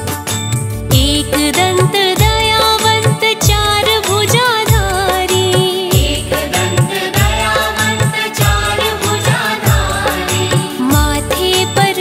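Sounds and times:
person singing devotional melody: 0.0s - 12.0s.

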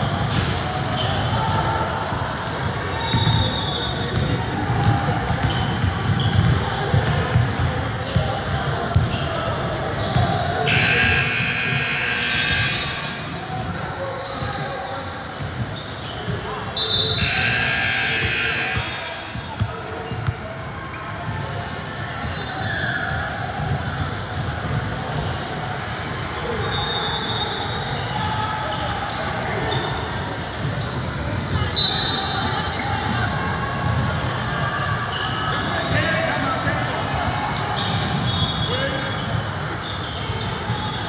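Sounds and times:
voices echoing in a hall: 0.0s - 41.0s
basketball bouncing on hardwood floor: 4.2s - 8.3s.

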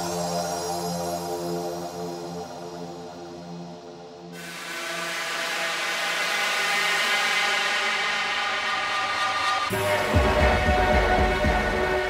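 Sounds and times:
noise wash: 4.4s - 11.8s.

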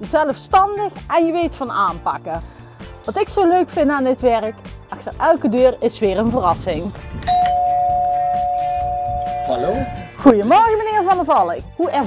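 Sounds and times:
two-tone doorbell chime: 7.3s - 10.1s.

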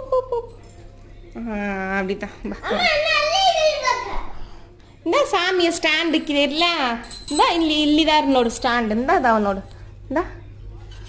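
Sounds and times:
toddler speaking: 2.6s - 4.5s.

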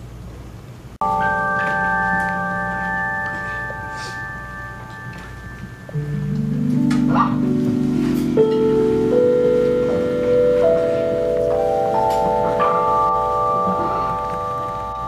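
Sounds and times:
electric keyboard chords: 1.0s - 15.0s.

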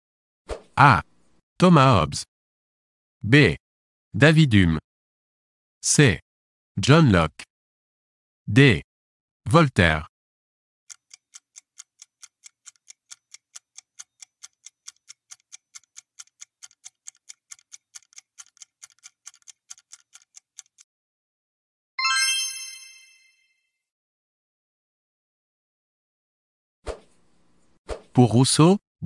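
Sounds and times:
bright chime: 22.0s - 23.6s.

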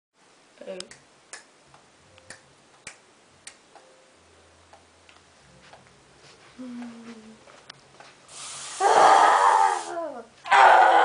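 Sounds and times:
boy screaming: 8.8s - 11.0s.

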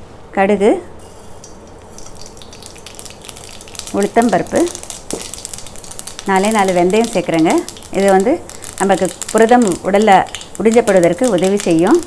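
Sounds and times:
mustard seeds popping in hot oil: 1.0s - 12.0s.

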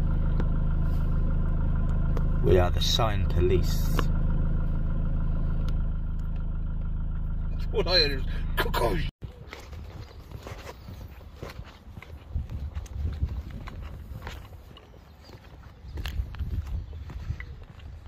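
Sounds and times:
steady low rumble: 0.0s - 9.1s
footsteps on pavement: 9.2s - 18.0s.

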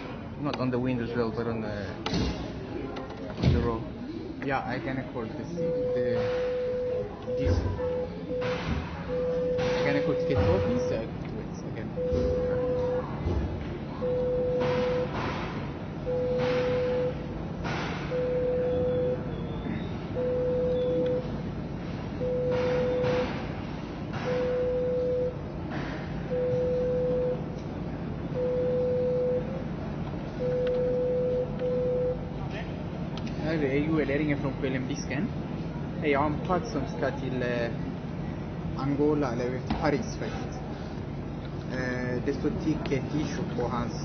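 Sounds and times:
murmur of voices: 0.0s - 21.5s, 24.7s - 44.0s
electronic beep: 5.6s - 11.0s, 18.1s - 21.3s.

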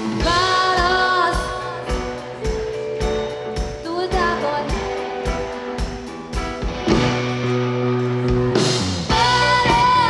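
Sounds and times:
live rock band playing: 0.0s - 10.0s
steady drum beat: 0.0s - 10.0s.

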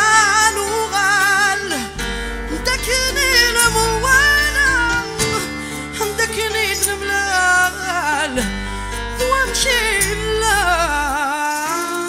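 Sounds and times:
low bass notes: 0.0s - 11.3s
acoustic guitar: 0.0s - 12.0s.

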